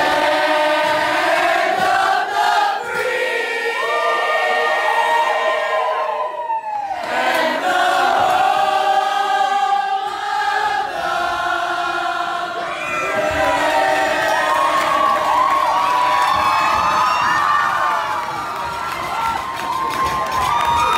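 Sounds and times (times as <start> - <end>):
crowd singing: 0.0 - 17.2
crowd cheering and shouting: 2.8 - 8.3, 11.3 - 20.9.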